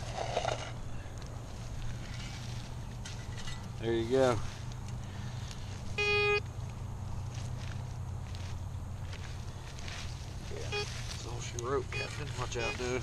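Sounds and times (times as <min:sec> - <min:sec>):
metal detector beep: 0:06.0 - 0:06.4, 0:10.6 - 0:11.0, 0:11.9 - 0:13.0.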